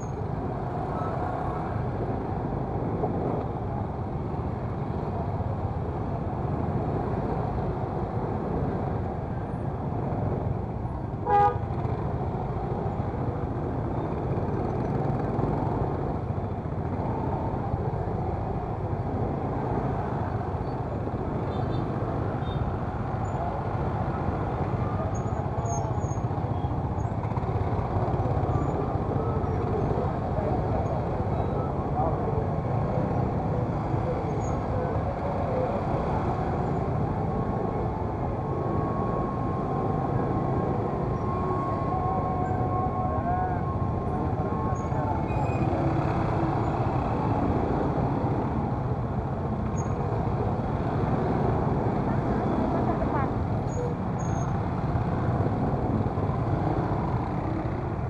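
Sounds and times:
traffic din of cars and motorcycles: 0.0s - 58.0s.

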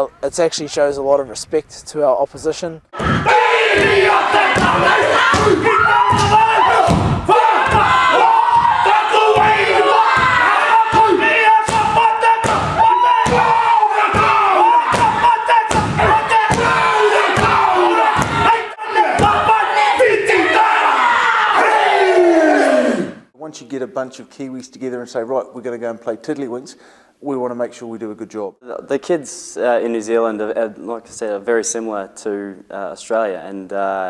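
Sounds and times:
group chanting a shout: 3.0s - 23.3s
men chanting in unison: 3.2s - 5.6s
stamping and slapping thumps: 3.8s - 16.8s, 17.4s - 18.5s.

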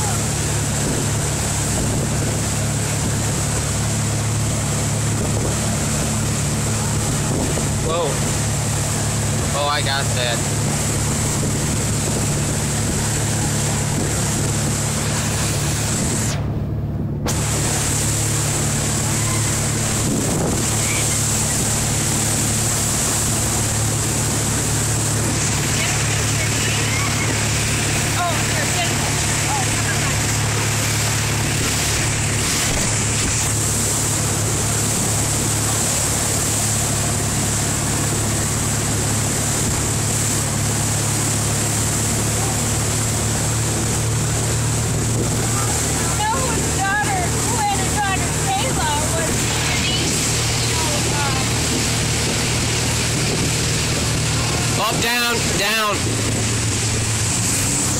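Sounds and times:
churning wake: 0.0s - 57.9s
motorboat engine running: 0.0s - 57.9s
wind buffeting microphone: 0.0s - 57.9s.

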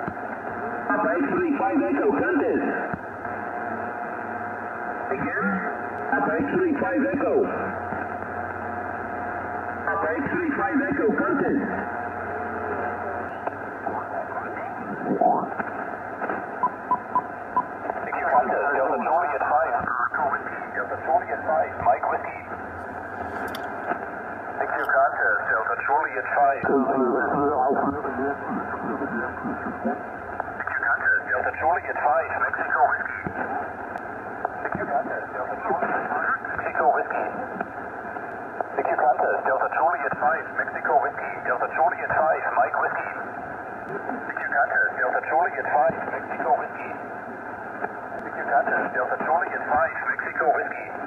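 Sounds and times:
radio band noise: 0.0s - 51.0s
distant voice over radio: 5.1s - 7.8s, 24.6s - 30.0s, 30.6s - 33.5s, 38.7s - 43.3s, 48.2s - 51.0s
distorted radio voices sliding in pitch: 24.6s - 31.6s.

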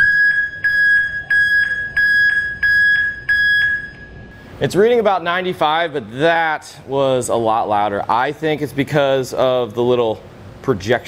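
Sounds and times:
backup alarm beeping: 0.0s - 4.6s.

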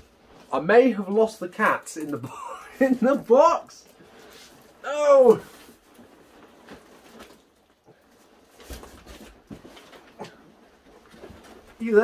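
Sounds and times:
cardboard box rustling: 5.4s - 12.0s.

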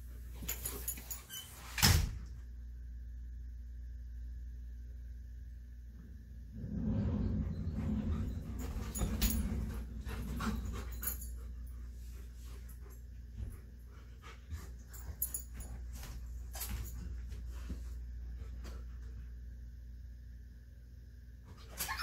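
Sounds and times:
dogs panting: 7.7s - 15.8s.

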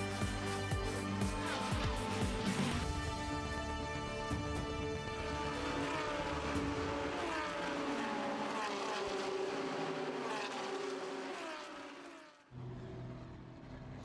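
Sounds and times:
racing car engines: 0.0s - 14.0s.

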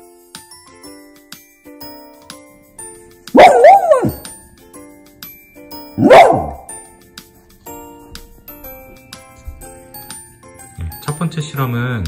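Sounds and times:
light background music: 0.0s - 12.0s
dog barking: 3.4s - 4.3s, 6.0s - 6.8s.

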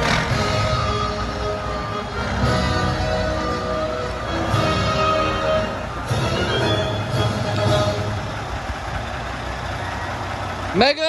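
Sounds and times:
fire engine idling: 0.0s - 11.0s.

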